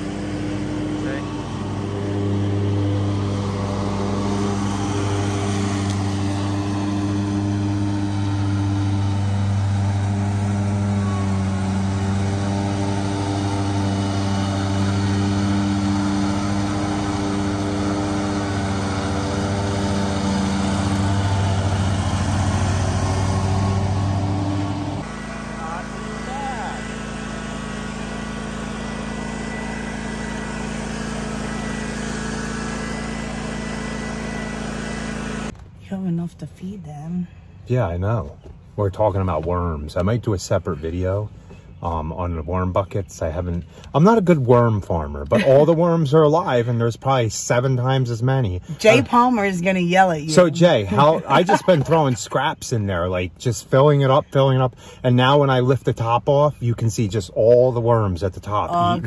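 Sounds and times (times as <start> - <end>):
lawn mower engine running: 0.0 - 35.8, 37.4 - 59.0
small engine with high whine: 0.0 - 59.0.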